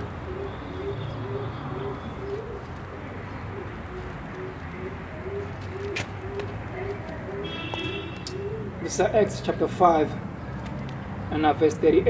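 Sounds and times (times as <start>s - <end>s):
dove cooing: 0.0s - 9.2s.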